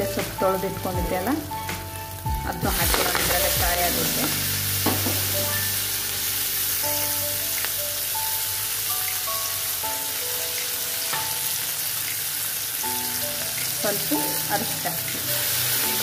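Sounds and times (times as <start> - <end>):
leaves sizzling in a pan: 0.0 - 16.0.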